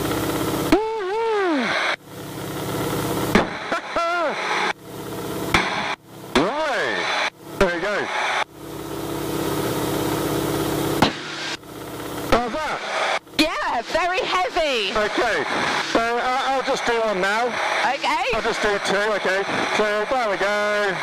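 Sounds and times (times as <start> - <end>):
radial aircraft engine: 0.0 - 21.0
airflow noise: 9.2 - 21.0.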